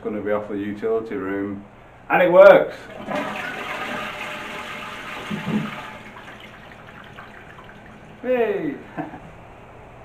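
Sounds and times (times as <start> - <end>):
toilet flushing: 2.8 - 8.8.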